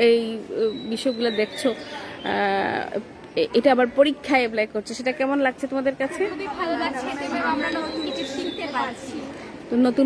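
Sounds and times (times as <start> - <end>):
girls chattering: 0.0 - 10.0.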